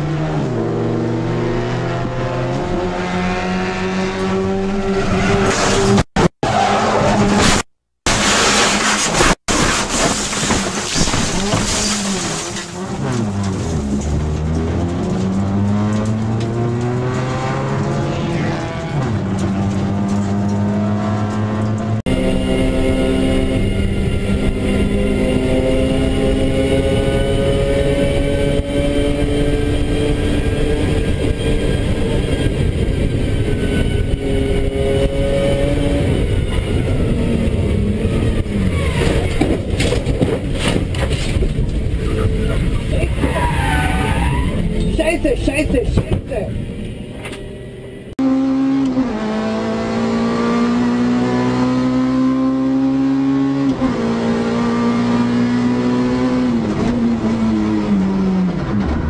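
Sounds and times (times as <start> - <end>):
race car engine at high revs: 0.0 - 6.4, 12.7 - 39.6, 48.1 - 59.0
car engine revving: 0.0 - 7.6, 11.4 - 59.0.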